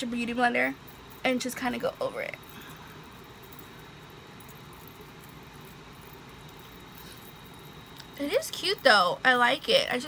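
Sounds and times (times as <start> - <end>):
faint background noise: 0.0 - 10.0
thin high tone: 0.0 - 10.0.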